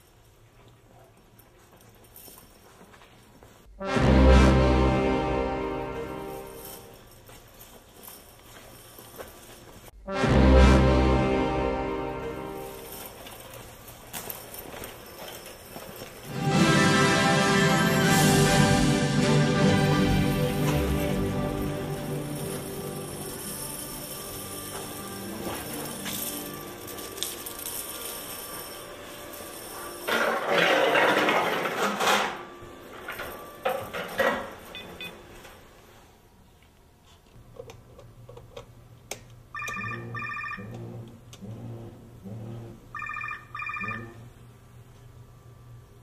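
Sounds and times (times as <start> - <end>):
background music: 3.8 - 7.2, 10.0 - 13.5, 16.2 - 33.8
phone ringing: 39.5 - 41.0, 42.9 - 44.3.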